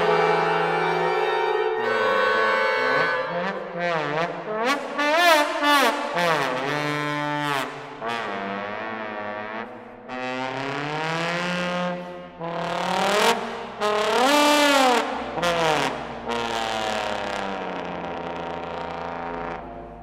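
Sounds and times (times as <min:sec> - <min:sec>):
orchestra playing: 0:00.0 - 0:04.1
solo trombone with pitch glides: 0:00.0 - 0:20.0.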